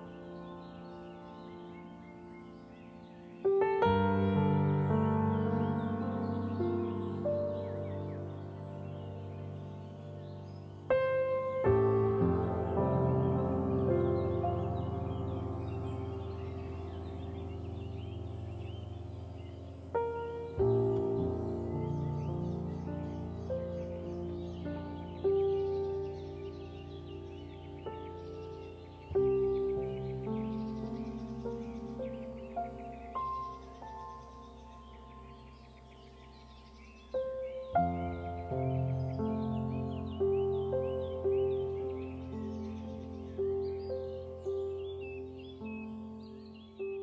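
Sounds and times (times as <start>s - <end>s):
birds chirping: 0.0s - 47.0s
held piano chord: 0.0s - 47.0s
soft sustained music notes: 0.0s - 47.0s.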